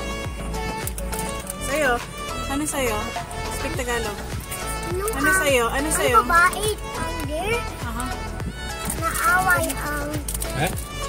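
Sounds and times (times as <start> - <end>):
background music with steady beat: 0.0 - 11.0
boy's high voice: 4.8 - 7.8, 9.0 - 10.3.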